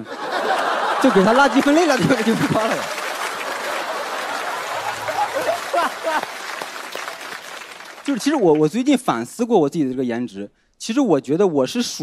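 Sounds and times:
audience applauding: 0.3s - 8.8s.

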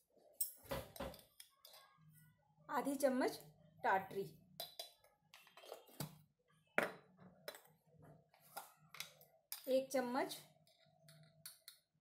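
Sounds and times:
spoon clinking on containers: 0.4s - 2.0s, 4.5s - 6.2s.

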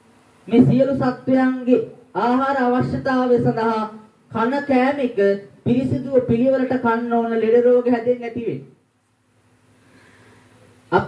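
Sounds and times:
faint steady hiss: 0.0s - 11.0s
man preaching: 0.5s - 8.7s.

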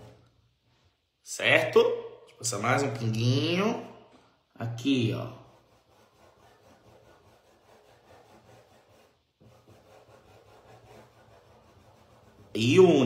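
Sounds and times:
paintbrush rubbing on cloth: 0.0s - 1.1s, 5.2s - 13.0s.

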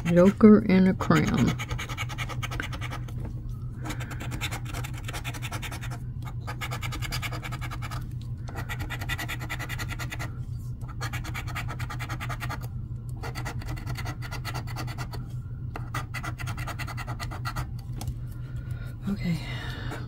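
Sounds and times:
coin scratching lottery ticket: 0.0s - 3.1s, 3.8s - 10.3s, 10.9s - 15.2s, 15.8s - 17.7s.

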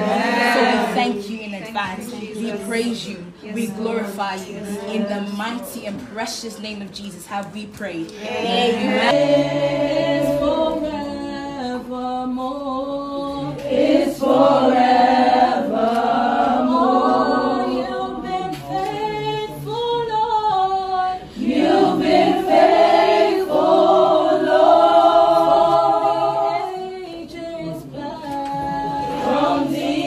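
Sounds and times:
women singing unaccompanied: 0.0s - 30.0s.

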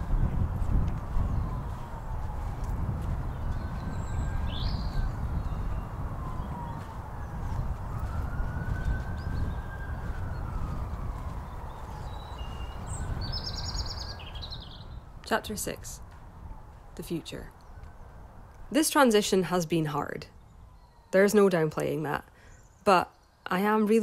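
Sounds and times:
steady low rumble: 0.0s - 14.0s
distant siren wailing: 0.0s - 22.2s.

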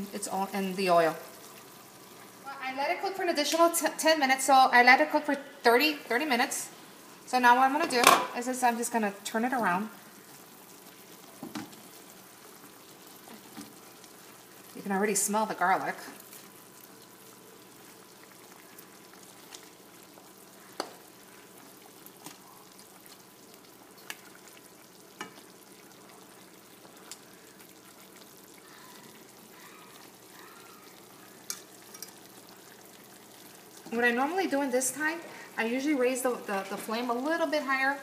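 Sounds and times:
chicken sizzling in frying pan: 0.0s - 4.2s, 6.1s - 38.0s
metal fork clicking on pan: 31.5s - 32.2s.

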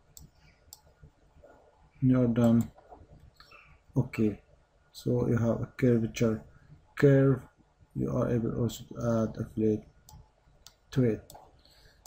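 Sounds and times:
computer mouse clicks: 0.1s - 0.9s, 2.4s - 2.8s.

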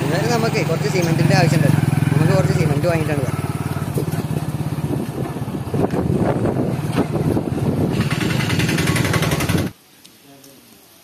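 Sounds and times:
motorcycle engine running: 0.0s - 9.7s.

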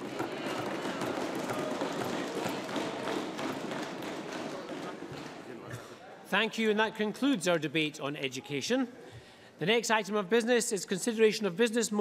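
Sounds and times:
crowd applauding: 0.0s - 5.7s.

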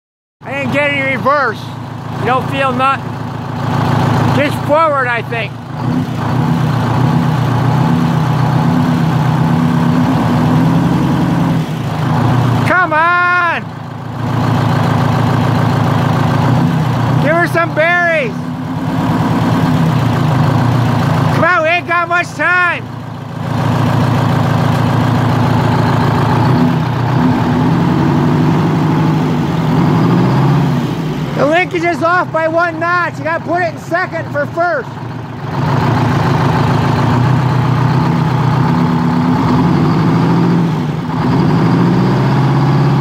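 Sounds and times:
large truck engine running: 0.4s - 43.0s.

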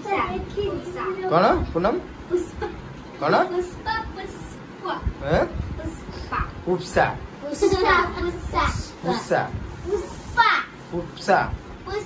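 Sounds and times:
children talking: 0.0s - 1.6s, 7.4s - 10.9s.

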